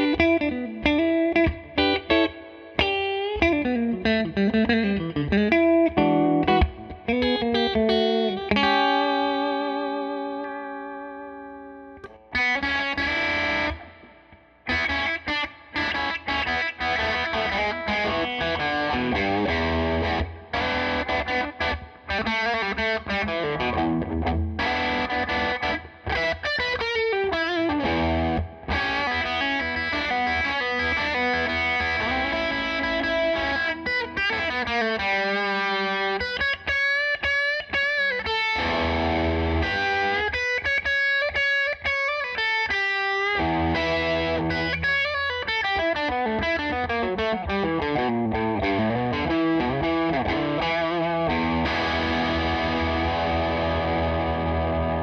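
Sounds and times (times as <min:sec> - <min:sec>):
electric guitar playing: 0:00.0 - 0:55.0.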